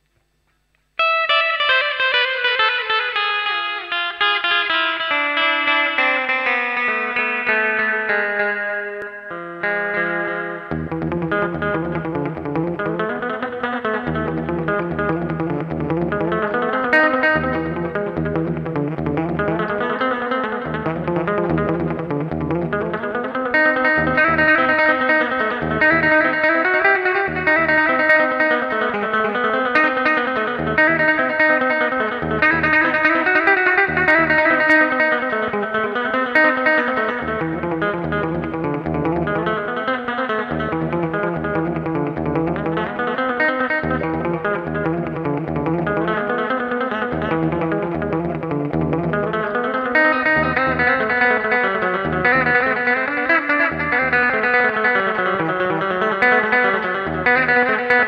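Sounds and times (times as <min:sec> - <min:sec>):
electric guitar with delay and reverb: 0:00.0 - 0:58.0.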